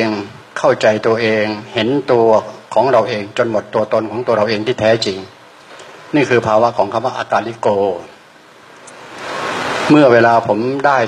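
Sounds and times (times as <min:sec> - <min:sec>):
person speaking: 0:00.0 - 0:08.2, 0:08.8 - 0:11.0
rushing noise: 0:08.5 - 0:10.6.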